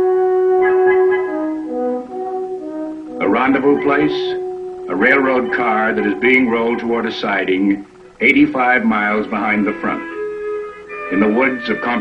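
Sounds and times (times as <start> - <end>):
brass instrument call: 0.0 - 12.0.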